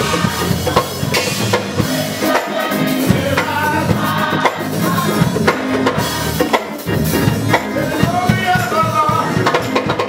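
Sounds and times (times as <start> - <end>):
church choir singing: 0.0 - 6.8
drum kit: 0.0 - 10.0
keyboard: 0.0 - 10.0.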